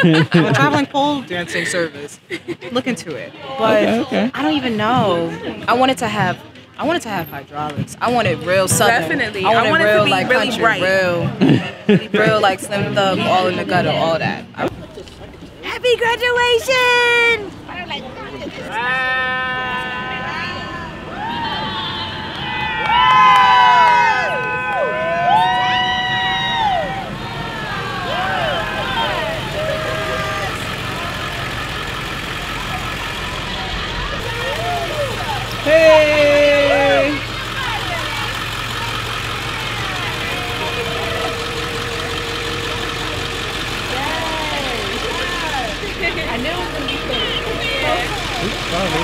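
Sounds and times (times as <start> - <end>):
bus engine idling: 0.0 - 49.0
crowd shouting and cheering: 3.4 - 14.6, 15.4 - 49.0
loud held horn blast: 38.3 - 49.0.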